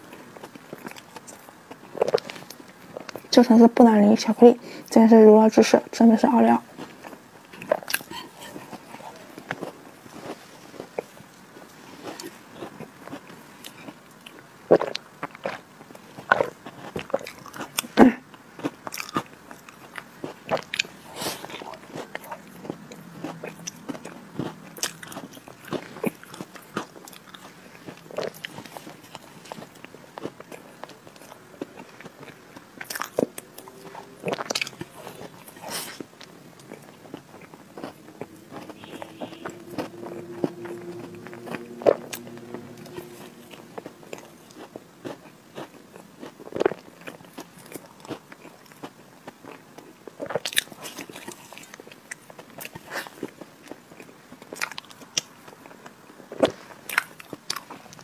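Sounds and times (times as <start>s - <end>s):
person chewing cake: 0.0s - 3.3s, 6.6s - 58.0s.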